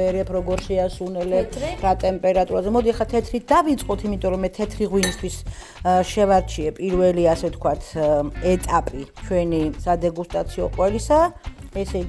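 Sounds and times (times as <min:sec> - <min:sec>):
people talking: 0:00.0 - 0:12.0
glass clinking: 0:05.0 - 0:05.4.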